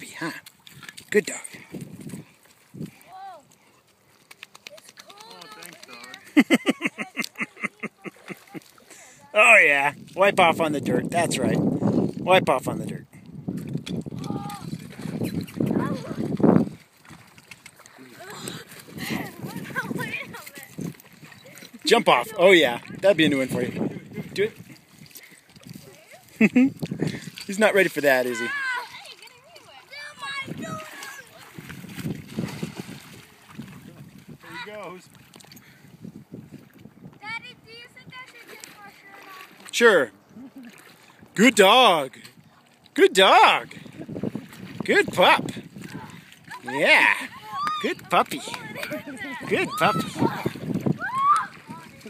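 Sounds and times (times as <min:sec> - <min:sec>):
water splashing and sloshing: 0:00.0 - 0:52.0
high vocal cry: 0:46.0 - 0:51.6.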